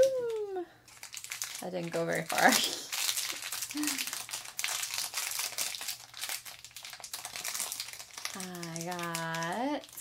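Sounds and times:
plastic wrapper crinkling: 0.0s - 10.0s.

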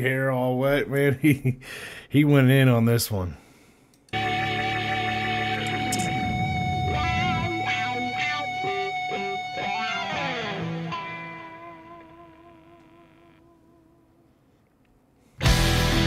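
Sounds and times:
keyboards: 4.2s - 8.7s
hard rock electric guitar: 4.2s - 13.3s, 15.4s - 16.0s.

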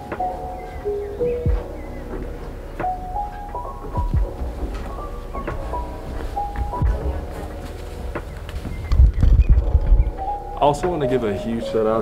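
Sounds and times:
footsteps on wooden floor: 0.0s - 10.2s.

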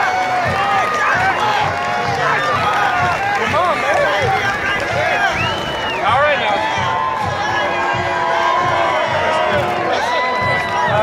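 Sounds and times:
crowd chattering and calling out: 0.0s - 11.0s.

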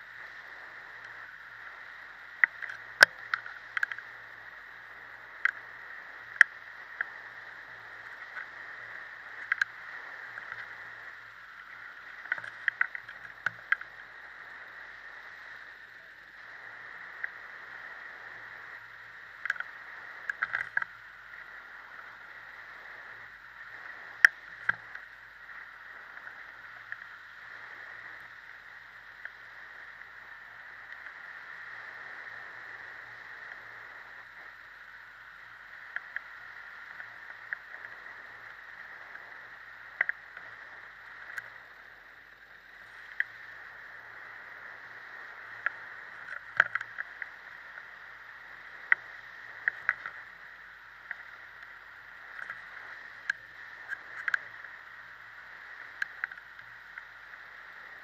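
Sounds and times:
muffled hang glider flight noise: 0.0s - 58.0s.

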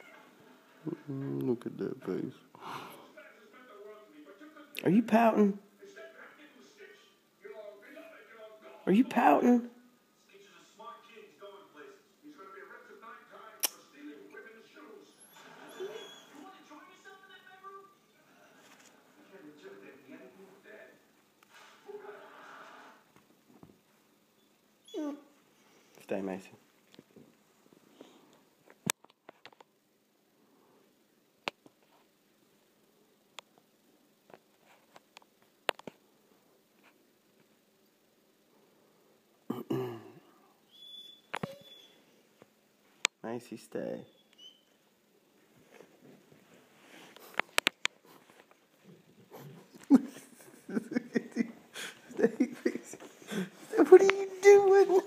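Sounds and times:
dog whining: 15.1s - 16.4s, 24.8s - 25.3s, 40.7s - 42.0s, 44.1s - 44.7s.

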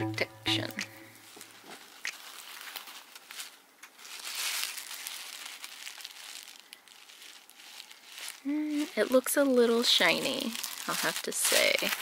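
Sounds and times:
plastic packaging crinkling: 0.8s - 12.0s.

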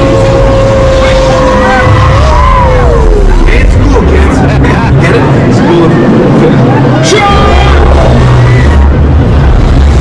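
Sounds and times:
loud deep rumble: 0.0s - 10.0s
race engine whine: 0.0s - 10.0s.

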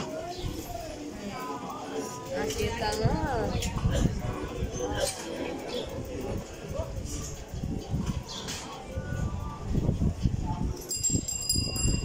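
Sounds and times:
small metal bell ringing: 10.7s - 12.0s.

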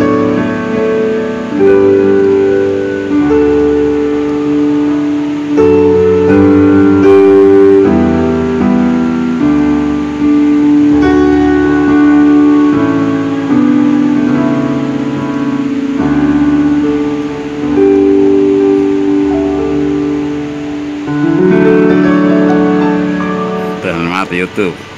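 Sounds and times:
electronic keyboard chords: 0.0s - 24.9s.

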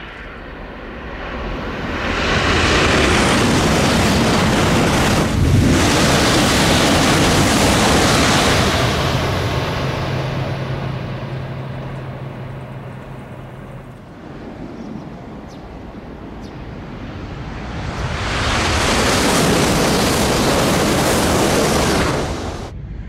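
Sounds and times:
wind on microphone: 0.0s - 12.8s, 13.8s - 23.0s
high-speed train rushing past: 0.0s - 23.0s.

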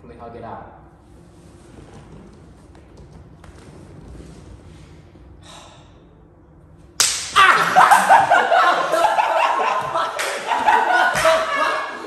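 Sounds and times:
hand slapping head: 7.0s - 8.3s, 9.7s - 11.5s.

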